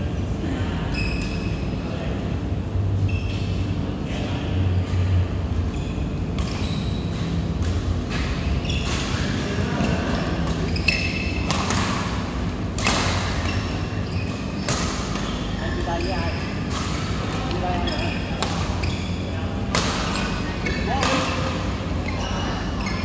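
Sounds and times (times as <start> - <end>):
voices in a hall: 0.0 - 7.1, 7.9 - 23.0
steady low hum: 0.0 - 23.0
rackets hitting shuttlecock: 6.3 - 15.6, 16.6 - 18.8, 19.7 - 21.8.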